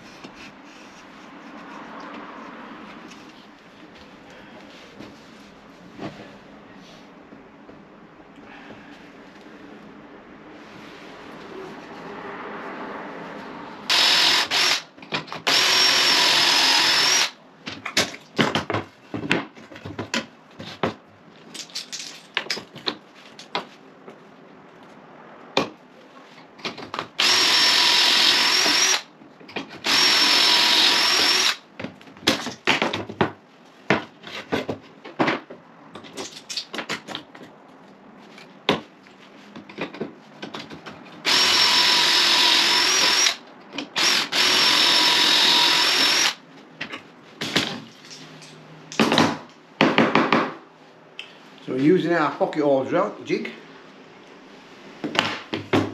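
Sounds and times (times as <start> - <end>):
cordless drill whining: 13.9 - 17.4, 27.2 - 29.1, 29.8 - 31.6, 41.2 - 43.4, 44.0 - 46.4
clicks and knocks of handling wood: 17.6 - 24.2, 29.2 - 29.8, 31.8 - 41.2.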